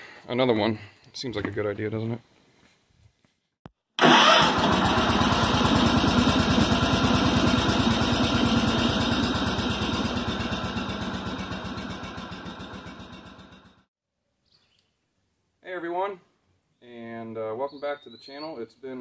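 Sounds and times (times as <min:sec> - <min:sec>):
small engine idling: 0:04.0 - 0:13.9.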